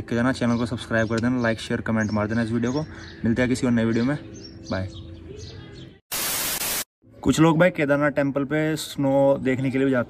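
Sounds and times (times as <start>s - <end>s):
static hiss burst: 6.1s - 6.9s.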